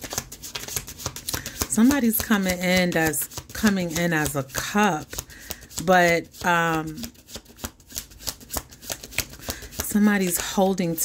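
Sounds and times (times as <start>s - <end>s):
cards being shuffled by hand: 0.0s - 11.0s.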